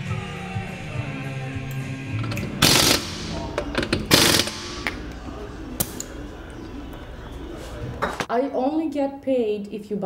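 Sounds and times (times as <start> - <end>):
pneumatic impact wrench: 2.3 - 4.9.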